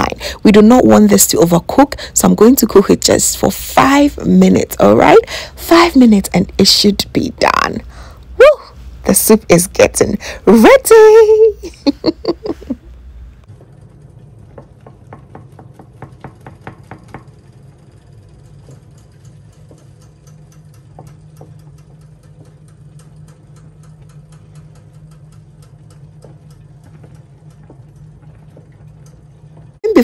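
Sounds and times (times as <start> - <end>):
steady low hum: 0.0 - 30.0
vegetables boiling in a saucepan: 13.2 - 30.0.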